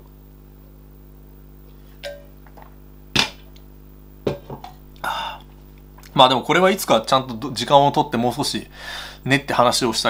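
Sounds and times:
mug knocking on hard surface: 4.2s - 4.8s.

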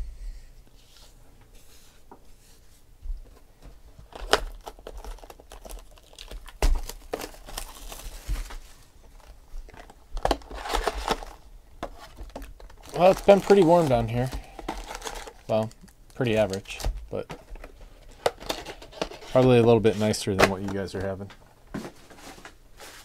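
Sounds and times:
plastic shrink-wrap tearing and crumpling: 4.1s - 11.4s, 12.2s - 17.0s.

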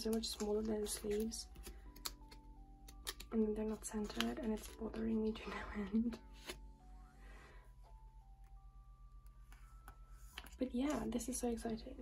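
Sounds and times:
plastic pages clicking: 0.0s - 3.3s, 3.9s - 5.0s
soft background music: 0.0s - 12.0s.

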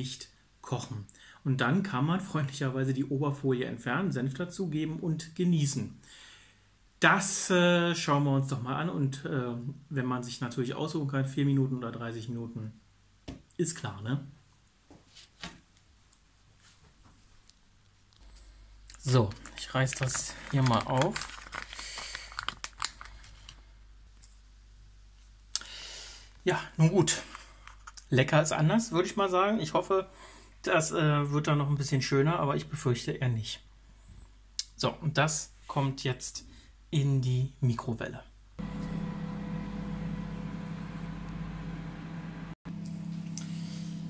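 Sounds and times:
plastic film tearing and crinkling: 18.9s - 23.6s
microwave oven humming: 38.6s - 44.0s.

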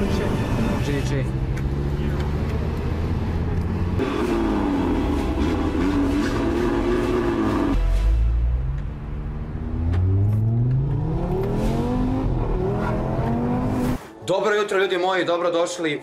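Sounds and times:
car engine accelerating: 0.0s - 7.8s, 8.4s - 14.0s.

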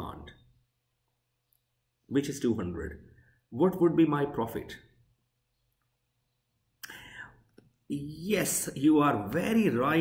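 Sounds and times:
man speaking: 0.0s - 0.6s, 2.0s - 5.0s, 7.8s - 10.0s
mouth click: 6.8s - 7.8s.

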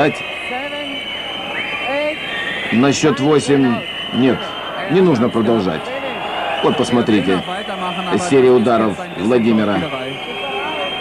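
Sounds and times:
crowd noise: 0.0s - 11.0s
referee counting aloud: 0.0s - 11.0s.

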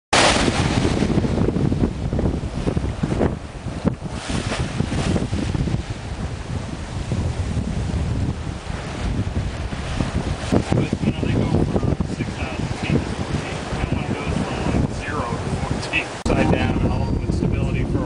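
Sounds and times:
bow wave rushing and splashing: 0.1s - 17.1s
waves breaking along hull: 0.1s - 18.0s
wind buffeting microphone: 0.2s - 18.0s.

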